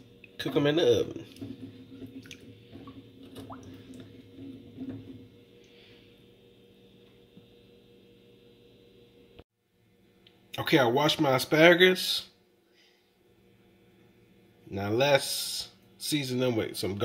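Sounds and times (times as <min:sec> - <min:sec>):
faint steady hum: 0:00.0 - 0:17.0
water drips: 0:02.1 - 0:04.2.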